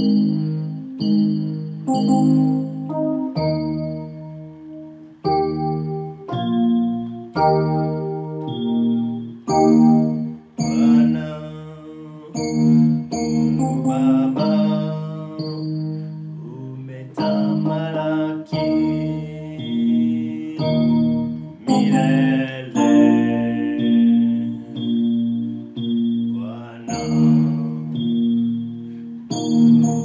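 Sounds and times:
electronic keyboard chords: 0:00.0 - 0:30.0
man singing: 0:10.6 - 0:12.6, 0:13.6 - 0:25.1, 0:26.3 - 0:28.2.

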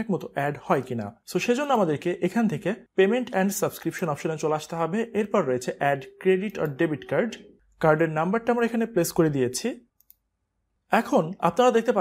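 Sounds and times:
person speaking: 0:00.0 - 0:10.3, 0:10.9 - 0:12.0.

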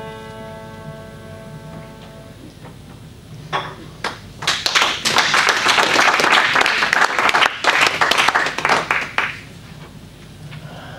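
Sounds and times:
audience applauding: 0:04.0 - 0:09.5.

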